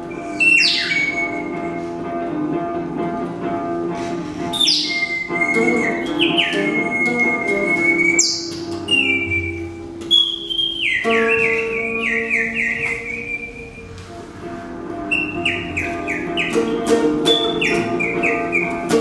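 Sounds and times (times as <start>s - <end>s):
bird-like whistled chirps: 0.1s - 1.9s, 4.5s - 14.0s, 15.1s - 19.0s.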